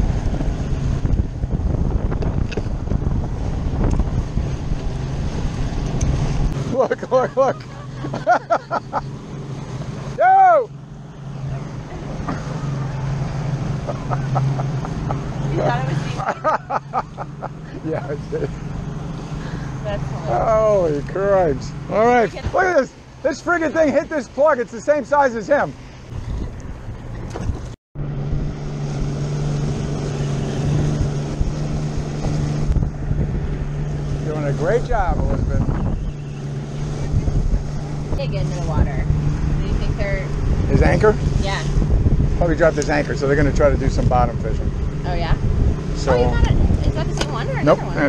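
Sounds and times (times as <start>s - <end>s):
wind on microphone: 0.0s - 6.6s, 26.1s - 48.0s
rush of boat wake: 0.0s - 10.7s, 11.4s - 48.0s
outboard motor running: 0.0s - 48.0s
excited voices: 6.6s - 9.0s, 10.1s - 10.8s.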